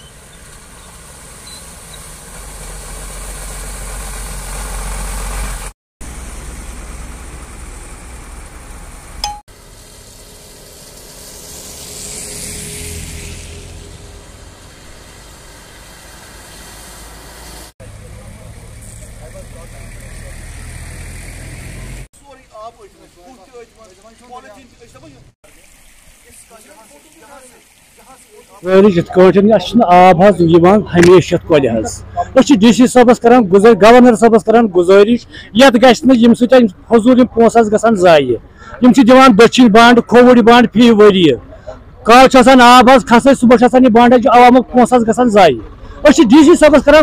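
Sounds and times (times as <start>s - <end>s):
vehicle engines running: 0.0s - 25.3s, 27.6s - 47.0s
water splashing under tyres: 22.4s - 28.9s.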